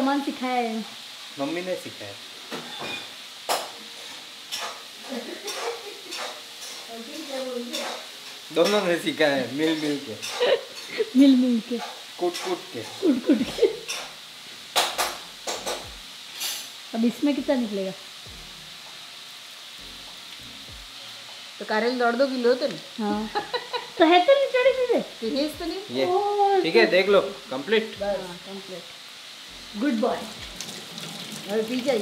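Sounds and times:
food sizzling in a pan: 0.0 - 32.0.

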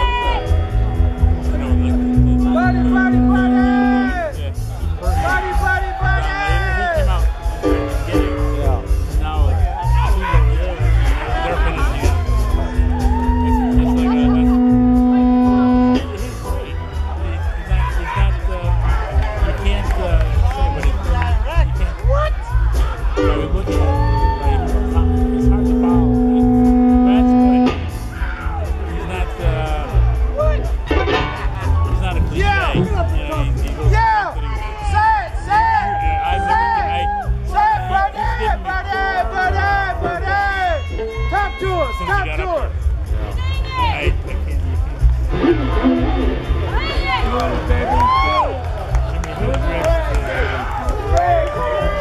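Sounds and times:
electric guitar feedback: 0.0 - 4.5, 12.3 - 16.6, 23.2 - 28.6, 45.3 - 47.2
blues band playing: 0.0 - 19.4, 20.3 - 50.0
drums: 0.0 - 38.6, 39.5 - 52.0
low bass beat: 0.0 - 52.0
long sustained note: 1.4 - 4.3, 13.4 - 16.2, 24.5 - 28.1.

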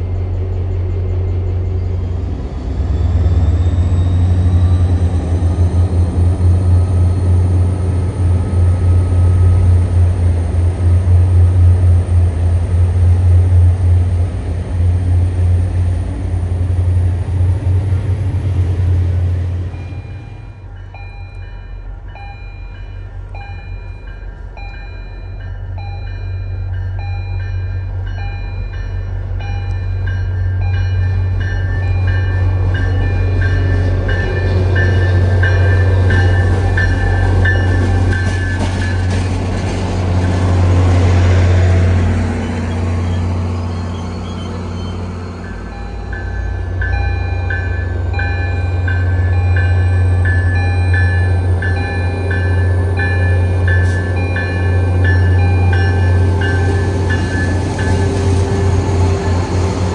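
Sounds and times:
train bell ringing: 0.0 - 12.2, 19.6 - 39.3, 42.4 - 59.4
diesel locomotive engine drone: 0.0 - 59.9.

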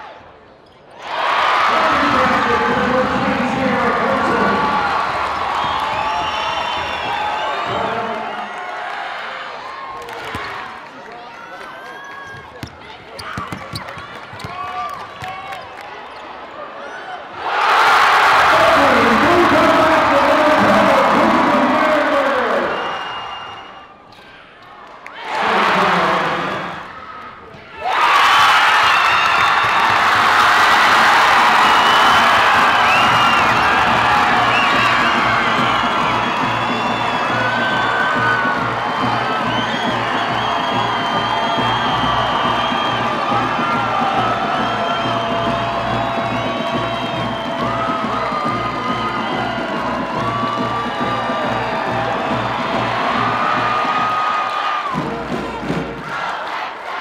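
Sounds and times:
crowd cheering and screaming: 1.0 - 10.8, 27.8 - 57.0.

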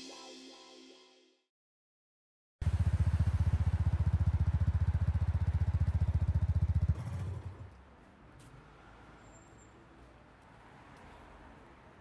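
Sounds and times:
motorcycle engine idling: 2.6 - 7.4.

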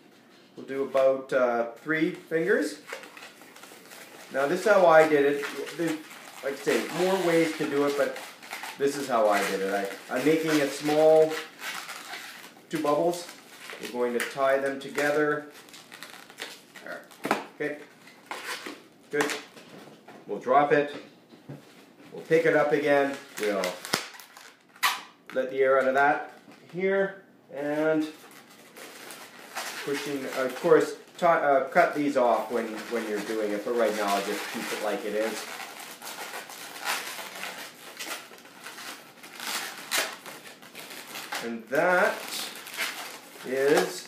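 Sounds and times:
balloons rubbing together: 2.5 - 17.1, 28.0 - 31.2, 32.1 - 44.0.

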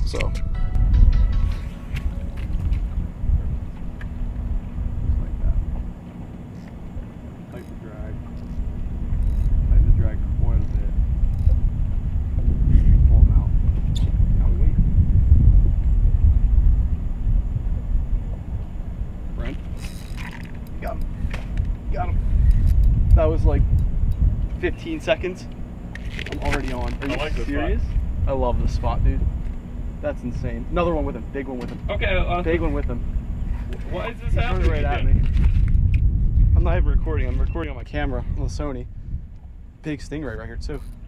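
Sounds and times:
wind noise on microphone: 0.0 - 7.1, 7.9 - 41.0.

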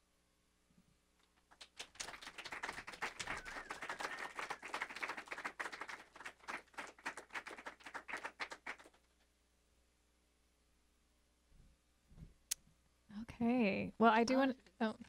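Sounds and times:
audience applauding: 1.5 - 9.0.

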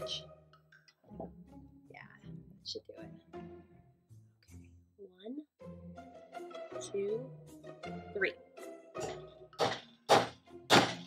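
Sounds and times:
hammer striking nail into wood: 9.6 - 11.0.

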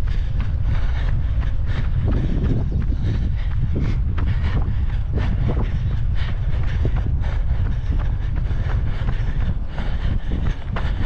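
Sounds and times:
footfalls on paved path: 0.0 - 11.0
wind buffeting microphone: 0.0 - 11.0.

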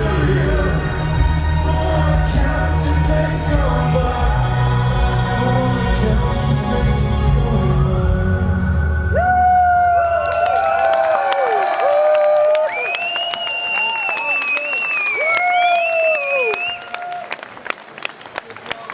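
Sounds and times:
audience cheering and whooping: 9.0 - 17.6
long held whistles: 12.6 - 17.0.

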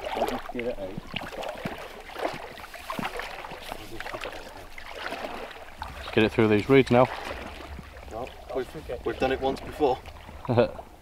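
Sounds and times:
water sloshing from wading: 0.0 - 11.0.

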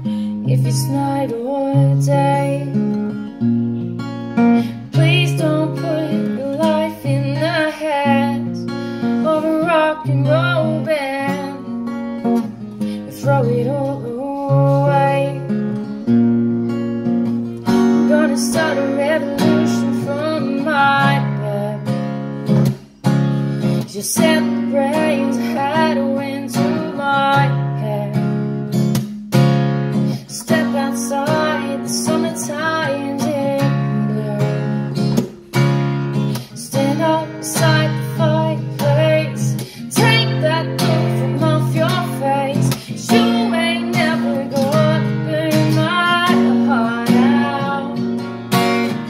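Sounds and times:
acoustic guitar strumming chords: 0.0 - 49.0
person singing: 4.7 - 8.6, 18.0 - 21.9, 30.2 - 35.2, 36.5 - 48.2.

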